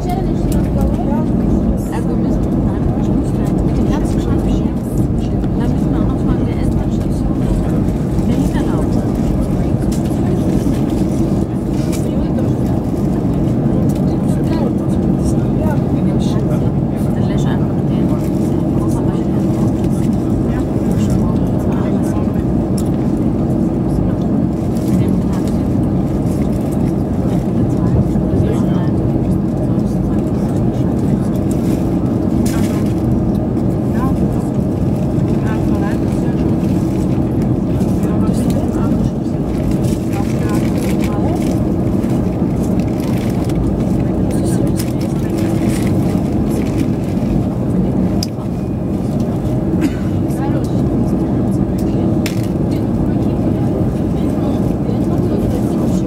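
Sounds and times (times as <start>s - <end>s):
airplane cabin engine hum: 0.0s - 56.0s.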